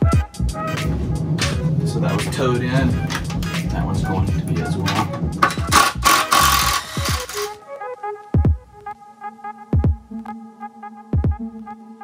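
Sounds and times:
electronic music with bass hits: 0.0s - 7.6s, 9.8s - 10.4s, 11.2s - 11.8s
cordless drill running: 5.4s - 7.6s.

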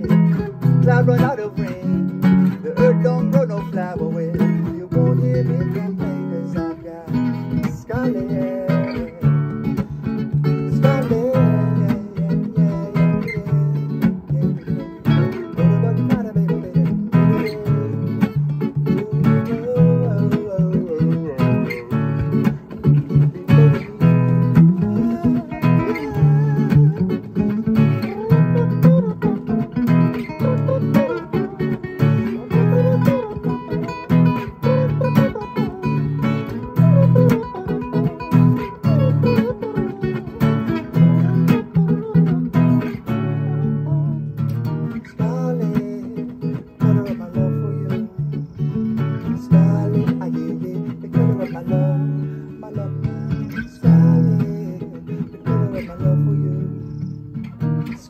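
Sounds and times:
acoustic guitars strumming chords: 0.0s - 58.0s.

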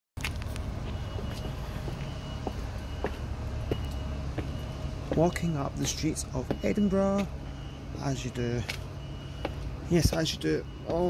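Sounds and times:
footsteps on paving and stone: 0.2s - 7.5s, 8.2s - 11.0s.

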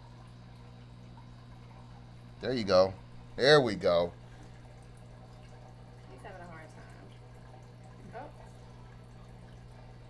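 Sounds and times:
aquarium hum: 0.0s - 10.0s
water trickle: 0.0s - 10.0s.

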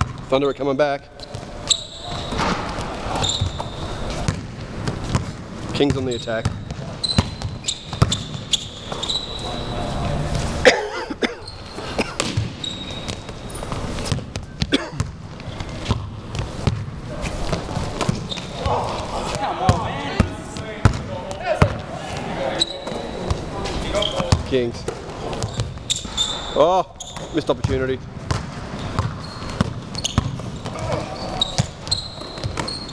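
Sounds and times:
basketball bouncing on gym floor: 0.0s - 0.3s, 2.1s - 9.0s, 12.0s - 18.9s, 19.7s - 21.8s, 24.2s - 26.1s, 27.0s - 32.9s
sneaker squeaks: 0.0s - 10.6s, 11.2s - 32.9s
players' voices and shouts: 18.5s - 25.5s.

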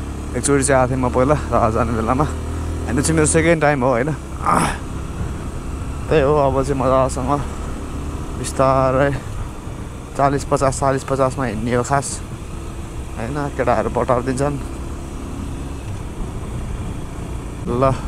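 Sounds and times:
motorcycle running on road: 0.0s - 18.0s.

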